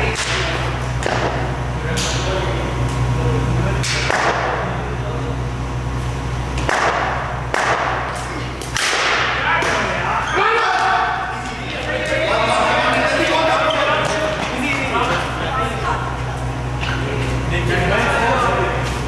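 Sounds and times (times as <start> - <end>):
players shouting: 9.0 - 16.3.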